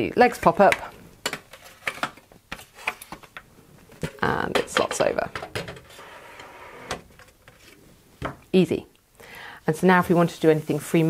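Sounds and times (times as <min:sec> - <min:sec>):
plastic table sliding scrape: 0:05.8 - 0:07.8.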